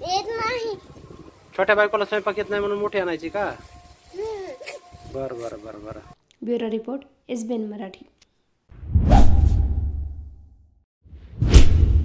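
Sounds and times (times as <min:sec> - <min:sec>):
whoosh with deep rumble: 0:08.8 - 0:12.0.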